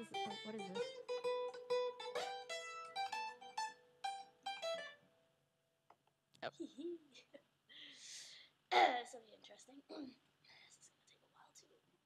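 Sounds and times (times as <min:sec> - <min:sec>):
plucked string notes: 0:00.0 - 0:05.0.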